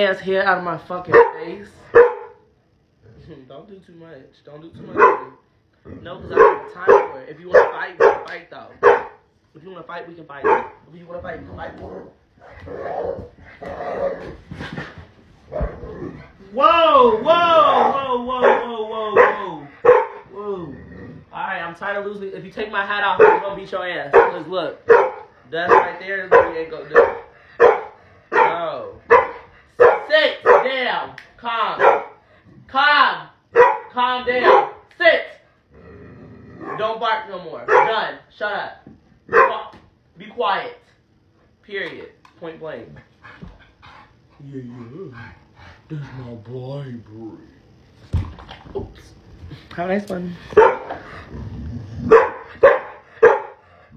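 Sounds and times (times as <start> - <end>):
dog barking: 1.1 - 2.5, 4.9 - 5.4, 6.2 - 9.2, 10.4 - 10.8, 17.7 - 20.3, 23.1 - 30.8, 31.8 - 32.2, 33.5 - 34.9, 36.6 - 37.0, 37.6 - 38.2, 39.3 - 39.7, 50.5 - 51.0, 52.1 - 53.6.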